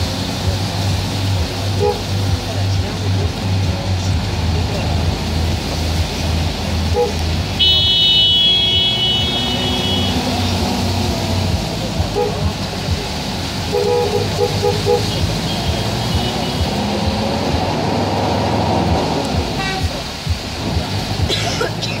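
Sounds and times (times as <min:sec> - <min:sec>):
engine and road hum: 0:00.0 - 0:22.0.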